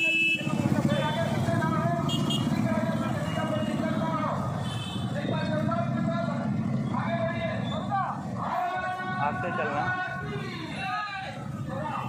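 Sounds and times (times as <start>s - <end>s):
motorcycle engines at low speed: 0.0s - 12.0s.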